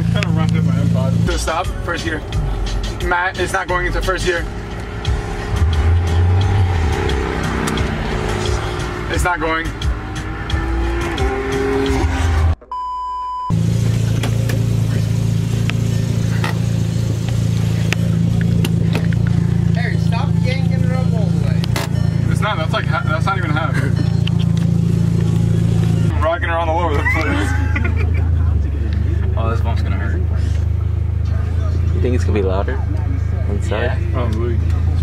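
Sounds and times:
moving car interior: 0.0 - 35.0
faint voices: 26.9 - 35.0.

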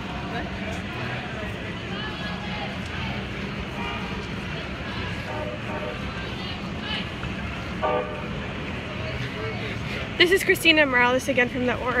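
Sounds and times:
marching crowd: 0.0 - 12.0.

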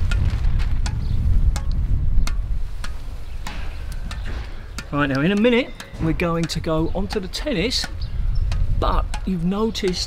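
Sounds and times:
ball tapping on racket strings: 0.0 - 10.0
wind rumble on microphone: 0.0 - 10.0.

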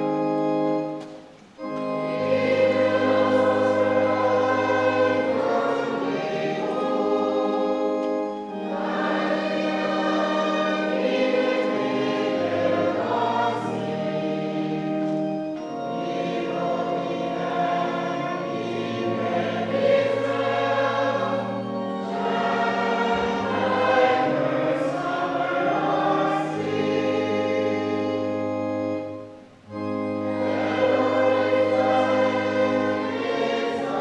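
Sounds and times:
choir singing a hymn: 0.0 - 34.0.

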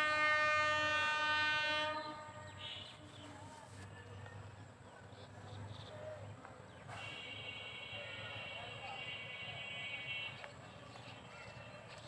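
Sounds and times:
train horn blast: 0.0 - 3.0.

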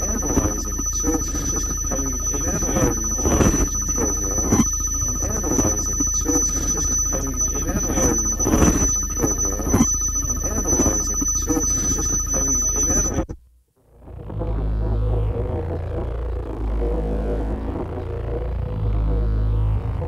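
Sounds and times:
chopped-up warbling voice: 0.0 - 13.2
low drone: 0.0 - 13.3, 13.9 - 20.0
thin high whine: 0.0 - 13.4
steady electronic hum: 0.0 - 20.0.

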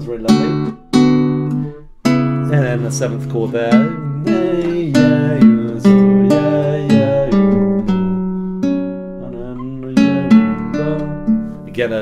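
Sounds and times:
classical guitar chords: 0.0 - 12.0.

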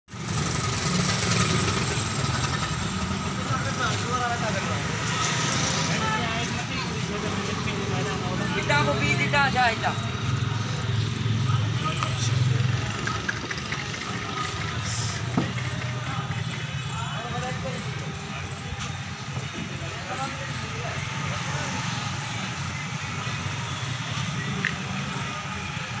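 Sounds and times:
engine running: 0.1 - 26.0
street noise: 0.1 - 26.0
people's voices: 1.0 - 26.0
men talking: 3.1 - 26.0
low vehicle rumble: 6.4 - 26.0.

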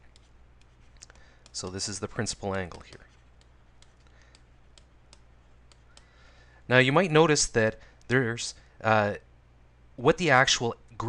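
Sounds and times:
low steady hum: 0.0 - 11.0
stylus tapping on tablet screen: 2.2 - 6.1.

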